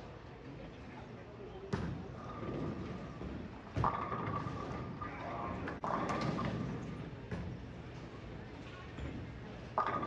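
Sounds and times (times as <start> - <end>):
chatter in bowling alley: 0.0 - 10.0.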